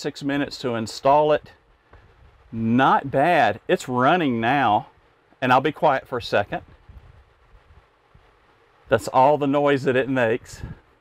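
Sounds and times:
man speaking: 0:00.0 - 0:01.5, 0:02.6 - 0:06.6, 0:08.9 - 0:10.8
fan hissing air: 0:00.0 - 0:11.0.

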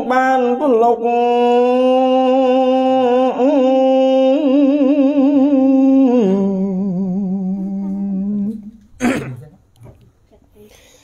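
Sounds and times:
person chanting with vibrato: 0:00.0 - 0:08.8.

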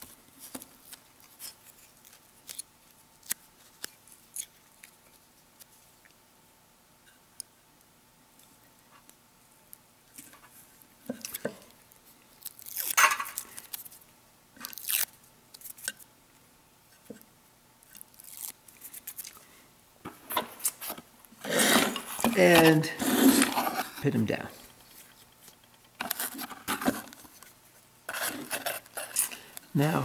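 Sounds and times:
fingers scraping tape: 0:28.1 - 0:29.3.

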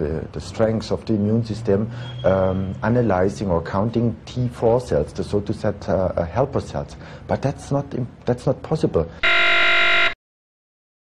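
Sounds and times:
harsh wrong answer buzzer: 0:09.2 - 0:10.2.

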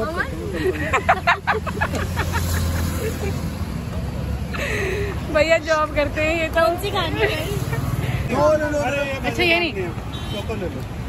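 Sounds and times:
low rumble of road traffic: 0:00.0 - 0:11.0.

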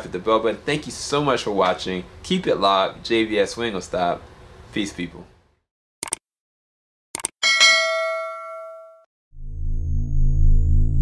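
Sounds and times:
bright ding: 0:07.4 - 0:09.1
low electronic hum: 0:09.4 - 0:11.0.

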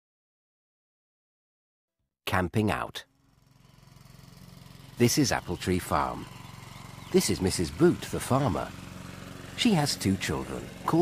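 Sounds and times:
low engine-like drone: 0:03.2 - 0:11.0.

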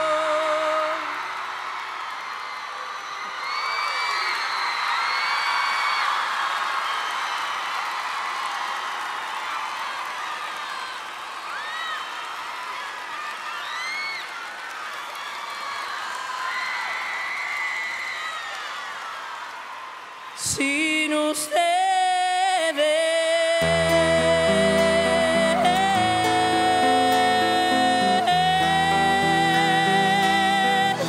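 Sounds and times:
audience cheering and applauding: 0:00.0 - 0:20.4
held sung note: 0:23.6 - 0:31.0.

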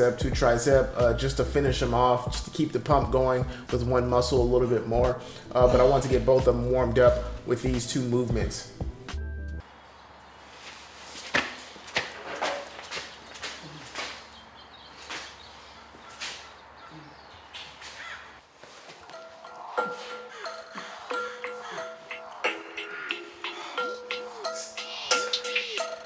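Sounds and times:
background music with held notes: 0:00.0 - 0:09.6, 0:19.0 - 0:26.0.

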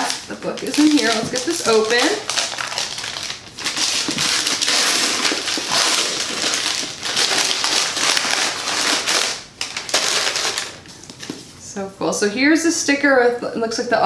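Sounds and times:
wrapping paper rustling and crinkling: 0:00.0 - 0:11.4.

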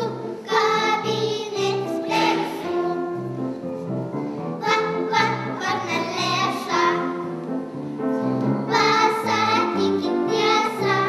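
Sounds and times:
young children singing: 0:00.0 - 0:03.6, 0:04.6 - 0:07.7, 0:08.3 - 0:11.0
piano accompaniment: 0:00.0 - 0:11.0.

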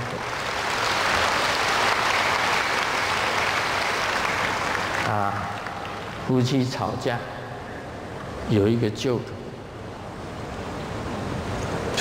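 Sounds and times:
large hall ambience rushing: 0:00.0 - 0:12.0.

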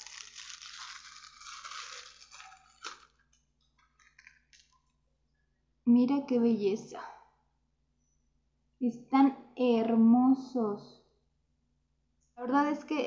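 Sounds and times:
pouch crinkling and rustling: 0:00.0 - 0:04.8.

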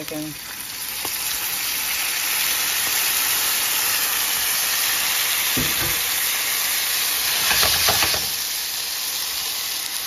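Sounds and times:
juices hissing sizzle: 0:00.0 - 0:10.0
potatoes frying in oil: 0:00.0 - 0:10.0.

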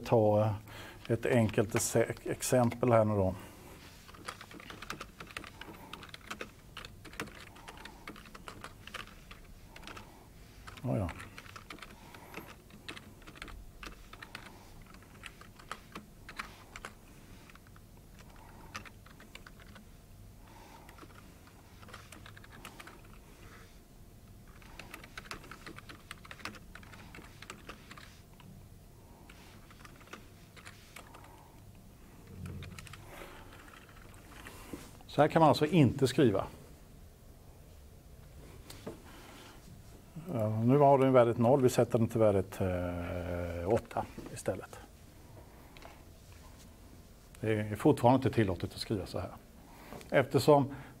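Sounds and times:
typing on computer keyboard: 0:04.1 - 0:19.9, 0:20.8 - 0:23.2, 0:24.4 - 0:28.5, 0:29.3 - 0:31.4, 0:32.4 - 0:34.4.

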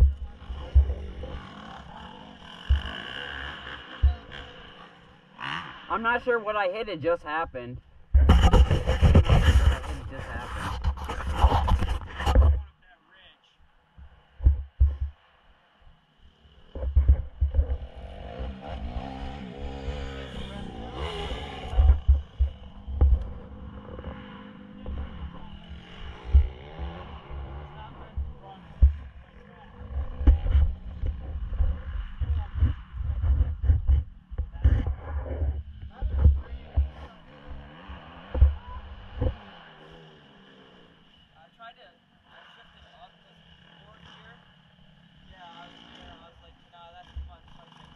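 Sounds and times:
muffled voices: 0:05.9 - 0:13.6.

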